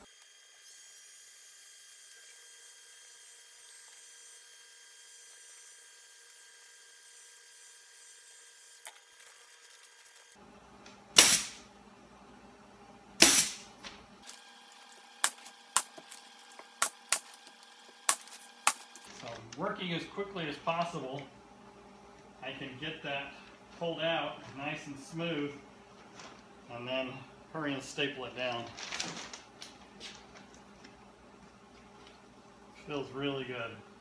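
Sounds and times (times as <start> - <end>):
pneumatic staple gun firing: 11.2 - 11.6, 13.2 - 13.7.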